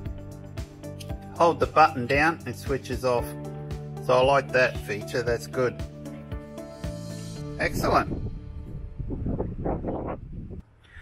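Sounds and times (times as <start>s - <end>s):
low rumble: 7.4s - 11.0s.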